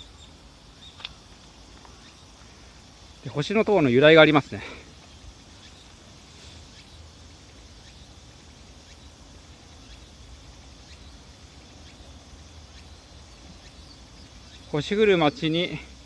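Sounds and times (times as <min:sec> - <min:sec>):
high-pitched insect chirp: 0:00.0 - 0:16.0
steady outdoor hiss: 0:00.0 - 0:16.0.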